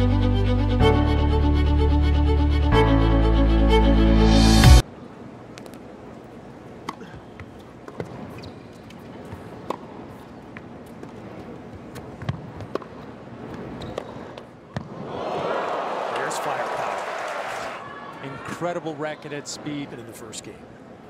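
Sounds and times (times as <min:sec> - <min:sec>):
indoor crowd hum: 0:00.0 - 0:21.0
tennis ball hit with rackets: 0:09.3 - 0:10.0, 0:11.9 - 0:15.0.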